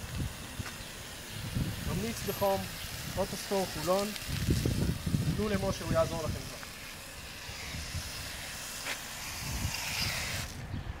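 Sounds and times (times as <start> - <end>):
foam sprayer hissing: 0.0 - 10.8.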